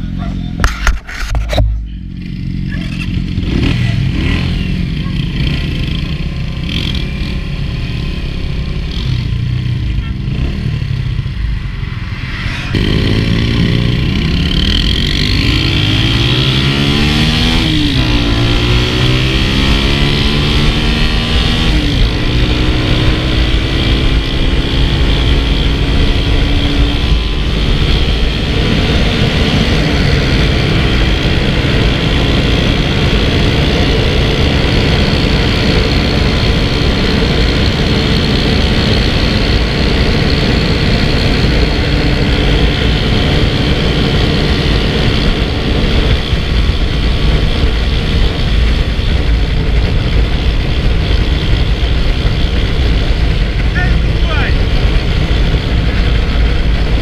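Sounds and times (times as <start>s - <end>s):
motorcycle engine accelerating: 0.0s - 57.0s
wind on microphone: 10.5s - 57.0s.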